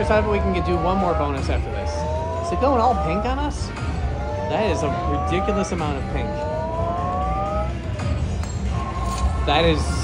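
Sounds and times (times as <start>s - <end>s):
rising electronic tones: 0.0s - 9.2s
low casino hum: 0.0s - 10.0s.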